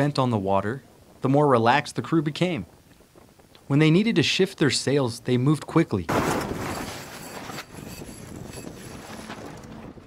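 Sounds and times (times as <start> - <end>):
wind: 0.0 - 10.0.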